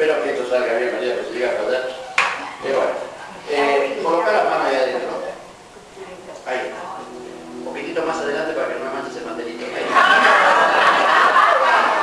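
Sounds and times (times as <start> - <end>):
person speaking: 6.6 - 10.0.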